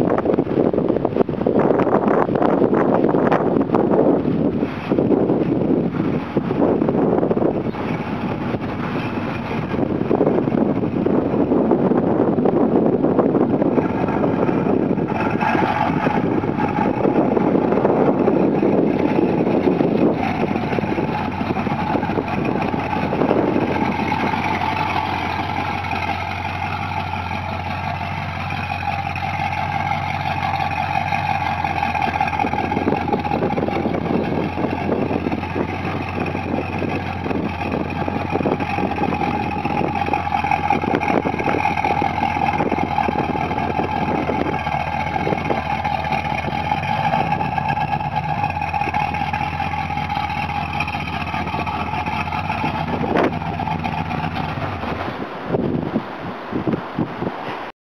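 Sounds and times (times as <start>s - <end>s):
car engine idling: 0.0s - 57.3s.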